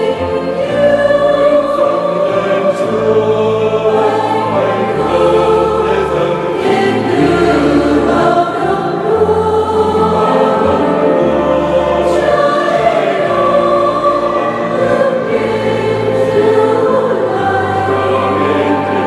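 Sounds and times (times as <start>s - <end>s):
mixed choir singing a hymn: 0.0s - 19.0s
piano accompaniment: 0.0s - 19.0s.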